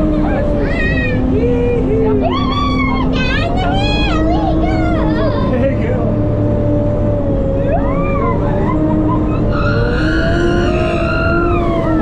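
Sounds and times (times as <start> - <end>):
constant whine: 0.0 - 12.0
vehicle engine and drivetrain drone: 0.0 - 12.0.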